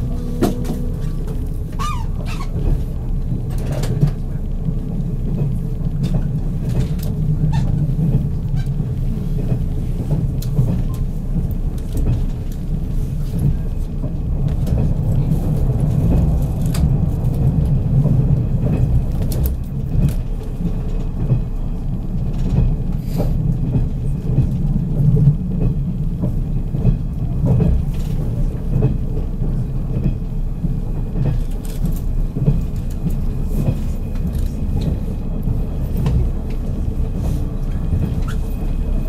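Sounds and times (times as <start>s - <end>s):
train wheels rumbling on rail: 0.0s - 39.0s.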